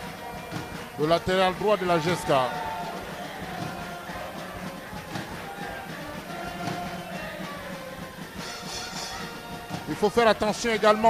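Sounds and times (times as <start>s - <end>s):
stadium crowd noise: 0.0s - 11.0s
supporters singing: 0.0s - 11.0s.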